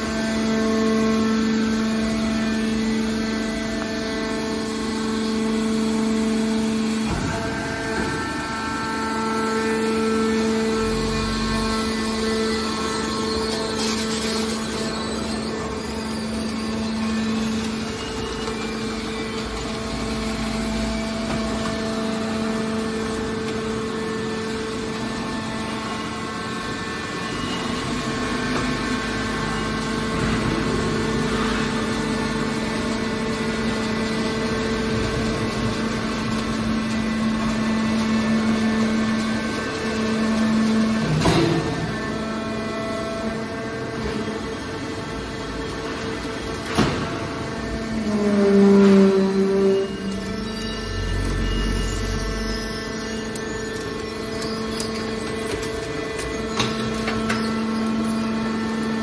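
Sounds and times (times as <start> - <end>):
hydraulic pump humming: 0.0 - 59.0.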